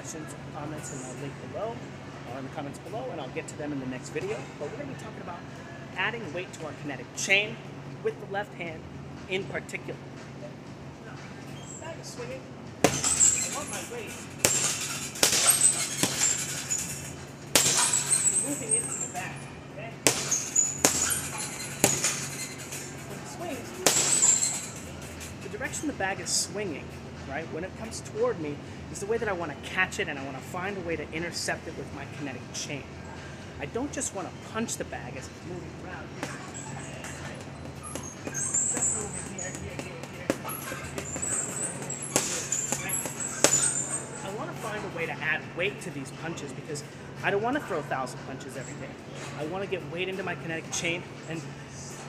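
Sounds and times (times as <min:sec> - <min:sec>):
gloves punching heavy bag: 0:12.8 - 0:19.1, 0:20.0 - 0:23.1, 0:23.7 - 0:25.2, 0:36.2 - 0:44.0
short high-pitched squeaks: 0:13.0 - 0:19.6, 0:20.2 - 0:25.6, 0:36.2 - 0:39.8, 0:40.4 - 0:44.4
punches on heavy bag: 0:20.0 - 0:22.3.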